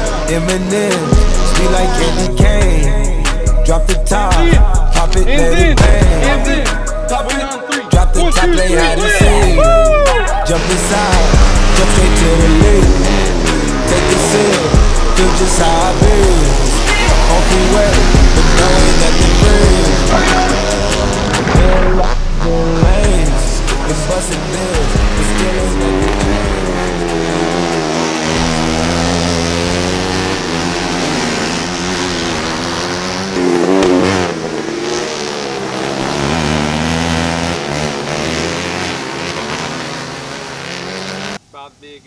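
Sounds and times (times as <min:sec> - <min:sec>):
music with heavy bass: 0:00.0 - 0:40.8
kart engine revving: 0:00.0 - 0:41.5.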